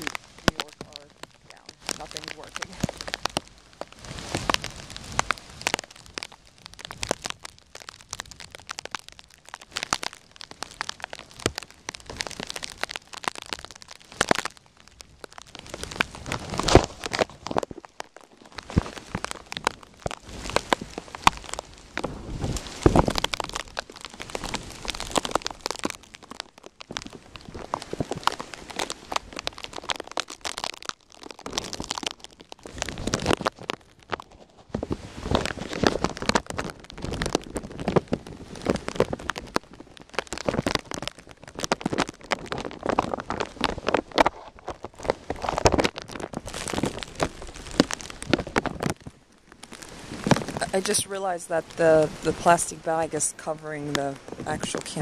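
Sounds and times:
plastic bag crinkling: 0:00.0 - 0:55.0.

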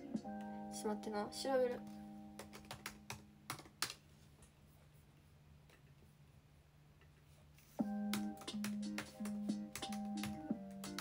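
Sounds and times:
computer keyboard typing: 0:02.4 - 0:04.0, 0:08.0 - 0:11.0.

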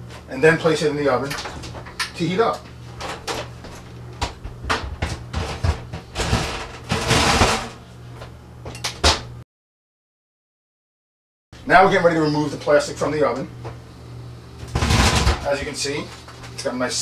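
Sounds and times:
metal scraping on oven rack: 0:05.0 - 0:07.8, 0:14.6 - 0:16.6.

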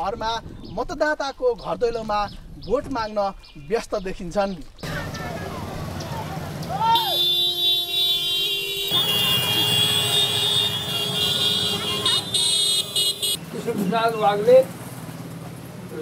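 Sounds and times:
motorbike engine rumble: 0:04.8 - 0:16.0
vehicle horn blaring: 0:06.9 - 0:13.4.

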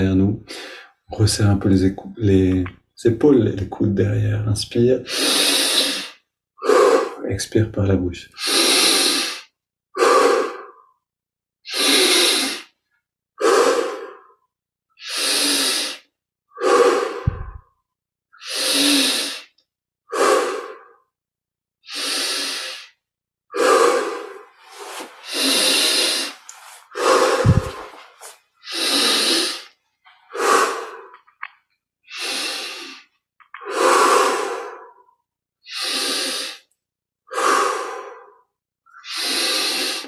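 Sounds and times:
man breathing deeply: 0:00.5 - 0:01.0, 0:08.4 - 0:11.0, 0:13.4 - 0:14.4, 0:15.0 - 0:17.7, 0:18.4 - 0:21.1, 0:21.8 - 0:31.3, 0:32.1 - 0:36.7, 0:37.3 - 0:40.0
low thump: 0:17.3 - 0:17.6.

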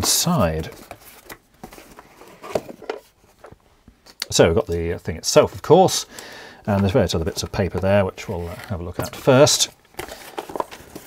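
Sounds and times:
plastic scraping against cardboard: 0:06.7 - 0:11.0.

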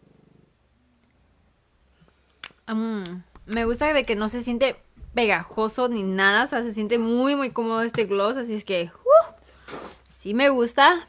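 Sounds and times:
faint low buzzing pulse: 0:03.3 - 0:06.8.

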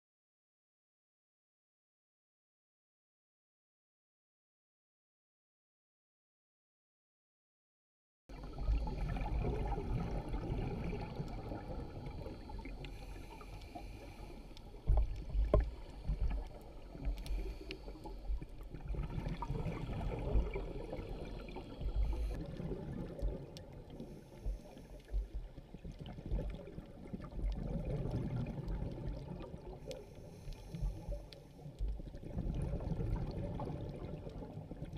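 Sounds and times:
muffled underwater water rumble: 0:08.3 - 0:34.9
faint clicks: 0:11.1 - 0:18.8, 0:21.4 - 0:34.6.

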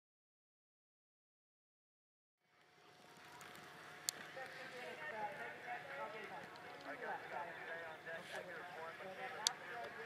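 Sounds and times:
indistinct voices talking: 0:03.9 - 0:10.0.

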